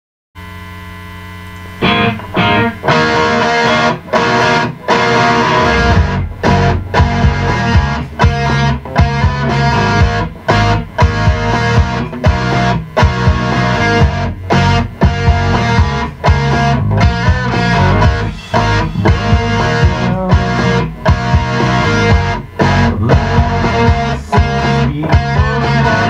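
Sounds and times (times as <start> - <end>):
distorted electric guitar riff: 0.4 - 26.0.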